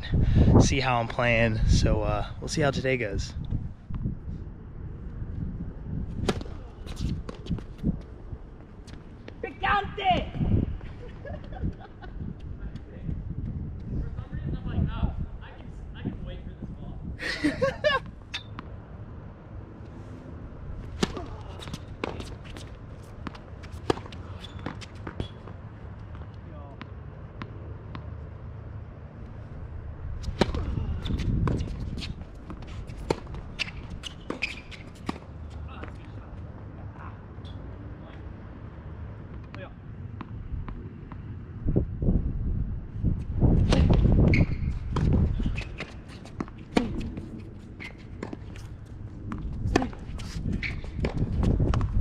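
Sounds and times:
racket hitting tennis ball: 20.8 - 25.6, 30.2 - 36.0, 43.6 - 47.3, 48.0 - 51.8
tennis racket hitting ball: 21.0 - 25.4.

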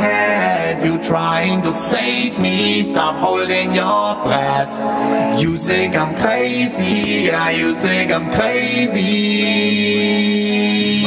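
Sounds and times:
looped vocal layers: 0.0 - 11.0.

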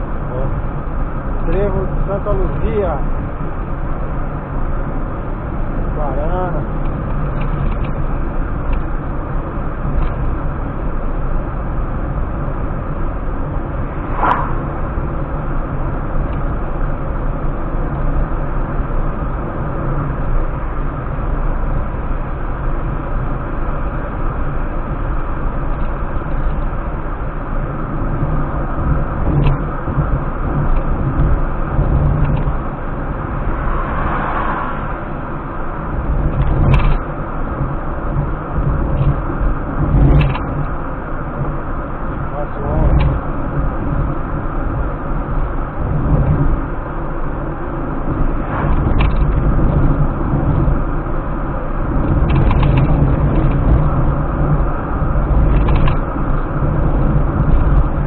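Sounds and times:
car engine and road noise: 0.0 - 58.0.

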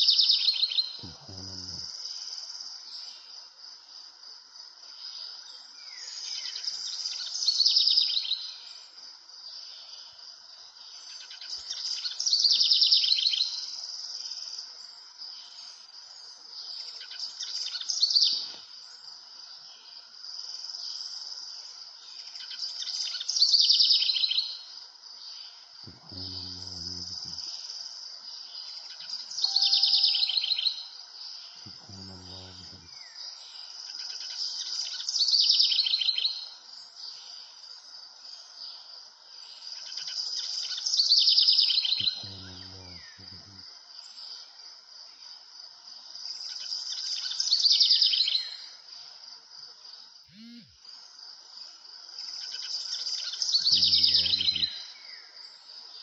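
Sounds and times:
high background buzz: 25.9 - 27.5, 29.5 - 30.4, 50.3 - 50.7, 53.7 - 54.7
bird singing trilled phrase: 29.4 - 30.8, 42.0 - 43.6, 53.6 - 54.8.

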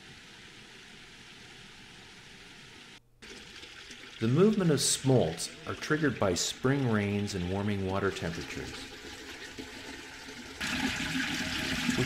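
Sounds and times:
water gushing from pipe: 2.4 - 12.0.

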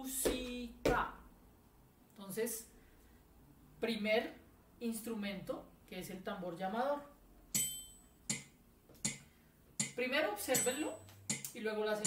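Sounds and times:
metronome ticking: 7.6 - 12.0.

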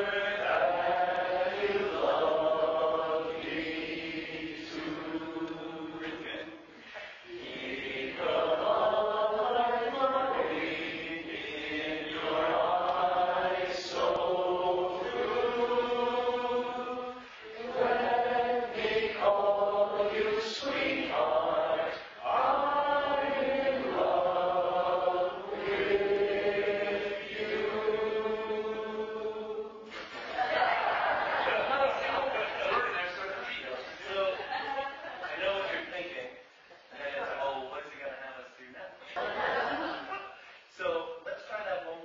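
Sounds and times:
male quartet singing in harmony: 0.0 - 29.9.

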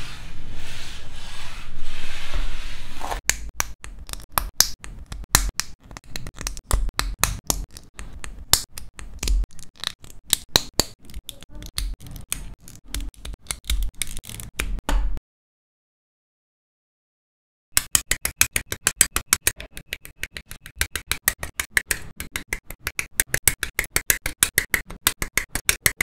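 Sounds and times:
plastic scraps swept across mat: 0.0 - 3.2.

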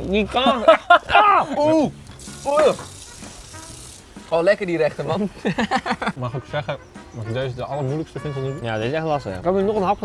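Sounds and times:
steady hiss: 1.9 - 6.2.

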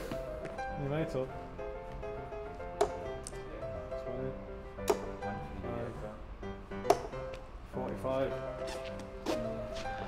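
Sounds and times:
background music: 0.0 - 10.0
dart hitting dartboard: 4.8 - 5.2, 6.8 - 7.2.

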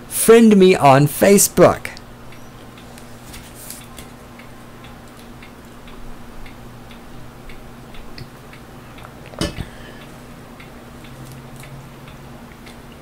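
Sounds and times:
faint electrical hum: 0.0 - 13.0
steady ticking: 3.7 - 13.0.

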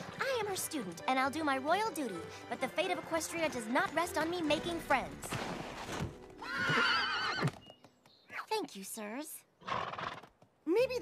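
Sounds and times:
horse whinny: 6.4 - 7.6, 9.6 - 10.3.

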